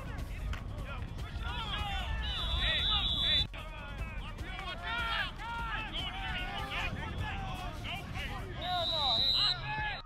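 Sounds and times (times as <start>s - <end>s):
referee's whistle blast: 2.2s - 3.5s, 8.6s - 10.0s
many overlapping voices: 3.6s - 10.0s.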